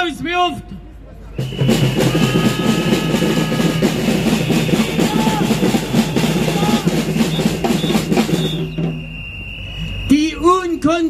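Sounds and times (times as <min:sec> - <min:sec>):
drums playing with music: 0:01.4 - 0:09.1.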